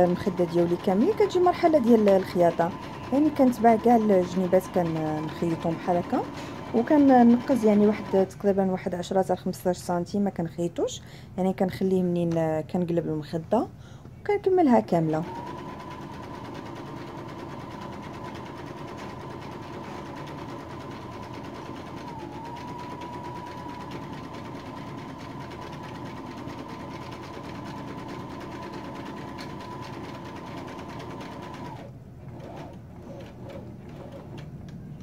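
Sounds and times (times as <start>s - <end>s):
sewing machine running: 0.0s - 8.5s, 15.0s - 34.4s.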